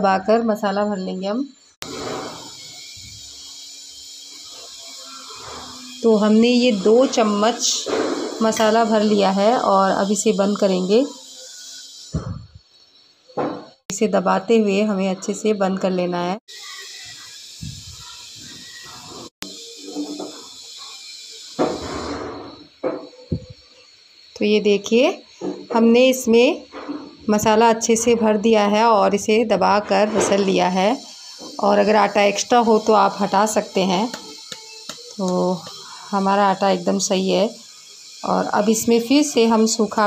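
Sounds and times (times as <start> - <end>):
steady hiss: 16.6 - 26.3.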